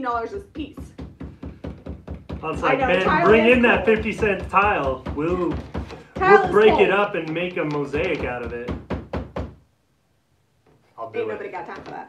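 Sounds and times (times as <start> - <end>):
stencil brush knocking on board: 0.0 - 9.6, 11.6 - 12.0.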